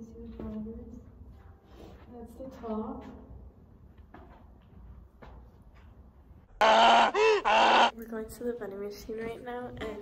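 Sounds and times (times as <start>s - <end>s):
loud voice-like cry: 6.6s - 7.9s.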